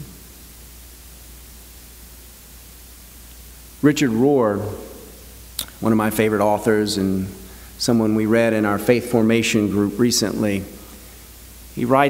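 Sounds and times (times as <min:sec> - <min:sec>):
background hiss: 0:00.0 - 0:12.0
man speaking: 0:03.8 - 0:10.9, 0:11.8 - 0:12.0.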